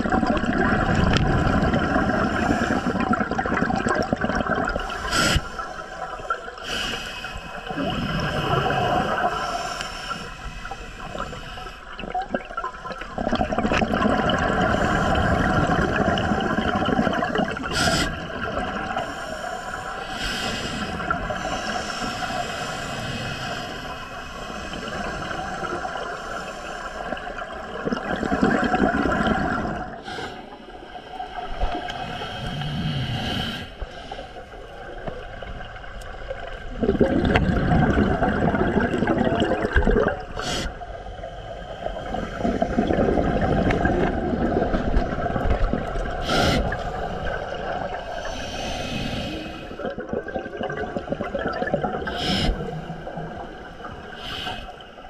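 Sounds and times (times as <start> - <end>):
underwater bubbles gurgling: 0.0 - 55.0.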